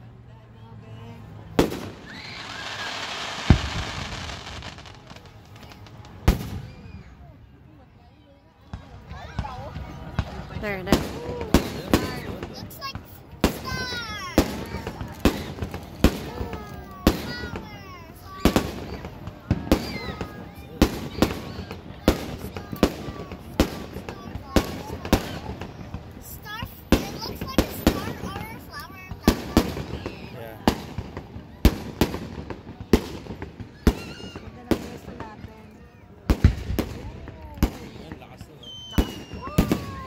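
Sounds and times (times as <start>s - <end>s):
fireworks bursting with sharp bangs: 1.4s - 7.5s, 8.6s - 40.0s.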